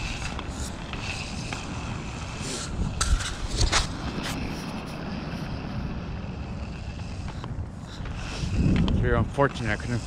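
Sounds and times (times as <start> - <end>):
wheels rolling on pavement: 0.0 - 10.0
wind on microphone: 0.0 - 10.0.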